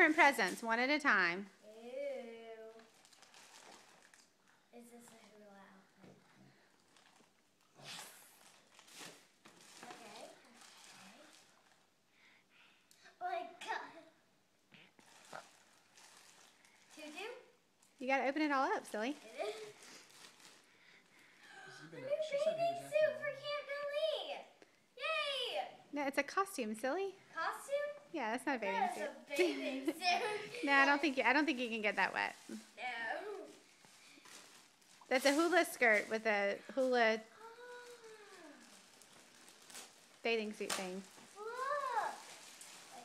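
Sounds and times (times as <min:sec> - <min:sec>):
cellophane wrapping rustling: 0:01.9 - 0:05.5, 0:06.5 - 0:12.0, 0:14.9 - 0:23.1, 0:28.4 - 0:43.0.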